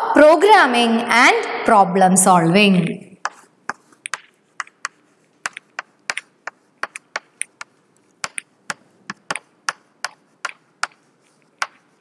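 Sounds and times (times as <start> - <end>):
chalk tapping on blackboard: 3.2 - 12.0.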